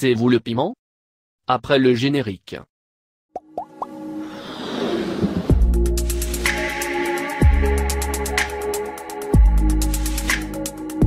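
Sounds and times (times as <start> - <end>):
whooshing riser: 4.1 - 6.6
quick rising pops: 4.2 - 5.8.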